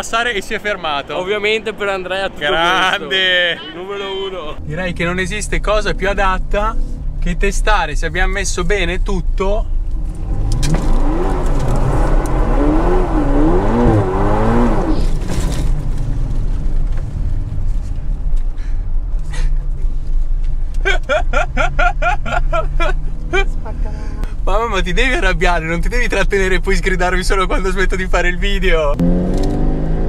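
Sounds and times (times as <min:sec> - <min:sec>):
car engine accelerating: 0:04.6 - 0:30.0.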